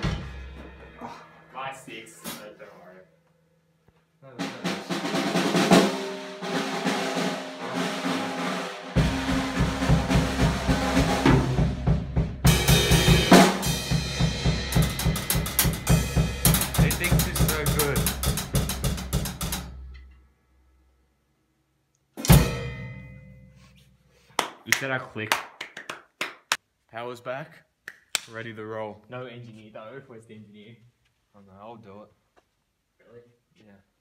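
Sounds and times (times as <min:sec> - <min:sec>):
drum kit groove: 0:00.0 - 0:01.4, 0:04.4 - 0:20.0, 0:22.2 - 0:23.7
deep bass: 0:09.0 - 0:19.8.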